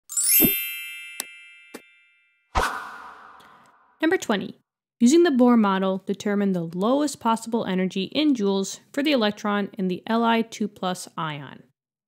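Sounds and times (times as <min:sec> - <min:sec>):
bright upward sweeping chime: 0:00.1 - 0:02.4.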